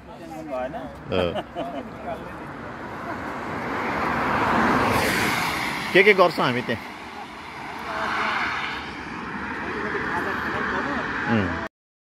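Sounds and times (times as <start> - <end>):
car driving past: 2.4 - 11.7.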